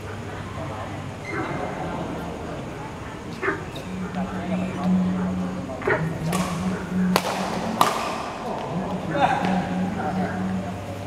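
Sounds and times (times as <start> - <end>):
indistinct voices in echoing hall: 0.0 - 11.0
steady low hum: 0.0 - 11.0.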